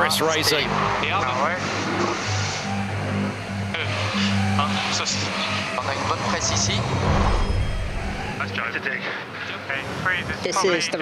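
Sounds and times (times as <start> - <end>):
background music with pulsing bass: 0.0 - 8.4.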